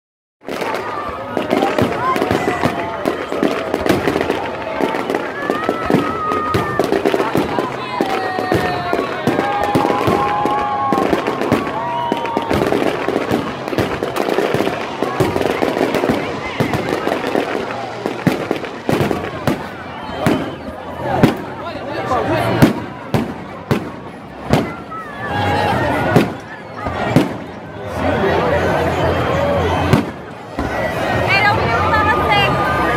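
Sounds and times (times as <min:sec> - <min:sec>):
fireworks bursting and crackling: 0:00.4 - 0:28.0, 0:29.6 - 0:31.7.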